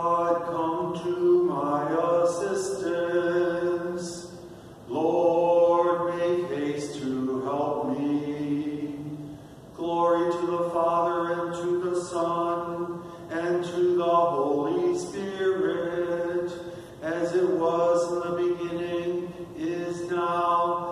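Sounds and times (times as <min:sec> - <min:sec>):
man singing unaccompanied: 0:00.0 - 0:20.9
singer breathing in: 0:04.4 - 0:04.9, 0:13.0 - 0:13.3, 0:16.6 - 0:17.0.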